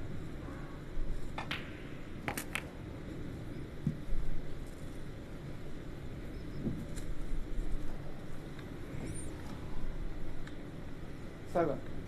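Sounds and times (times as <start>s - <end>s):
low arena hum: 0.0s - 12.0s.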